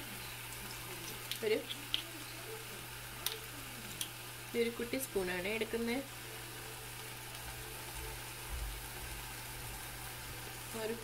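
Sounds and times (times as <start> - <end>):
mushrooms sizzling in a saucepan: 0.0 - 11.0.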